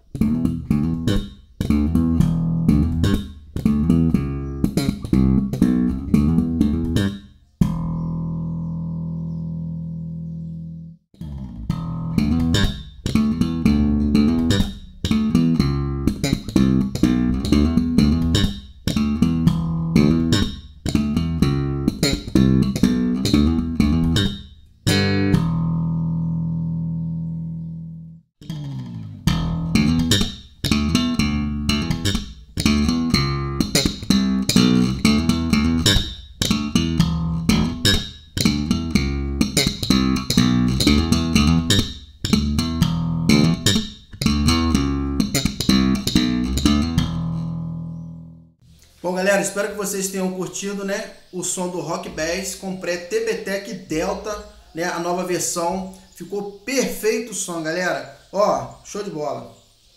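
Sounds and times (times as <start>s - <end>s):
electric bass groove: 0.0s - 48.8s.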